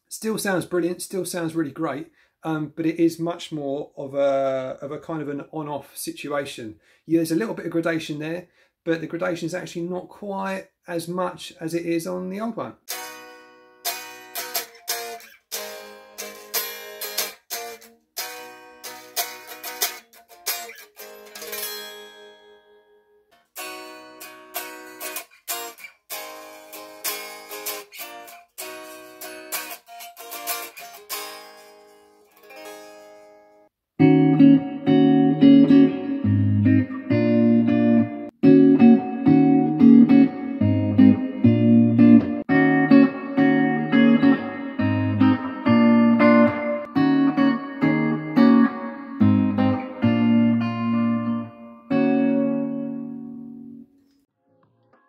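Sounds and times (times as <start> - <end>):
amplified electric guitar: 12.9 - 22.3, 23.6 - 33.2, 34.0 - 53.8
unamplified electric guitar plucking: 12.9 - 53.9.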